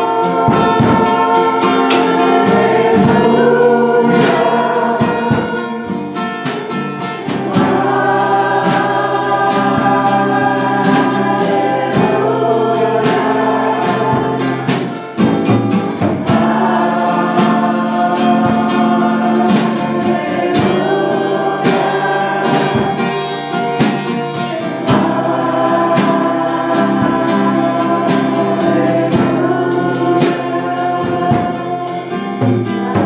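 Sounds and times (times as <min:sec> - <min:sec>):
strummed acoustic guitar: 0:00.0 - 0:33.0
woman and congregation singing: 0:00.0 - 0:33.0.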